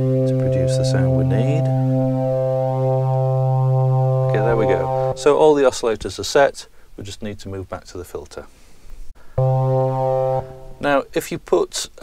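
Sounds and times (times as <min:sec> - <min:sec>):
synthesiser organ tone: 0:00.0 - 0:05.4, 0:09.4 - 0:11.0.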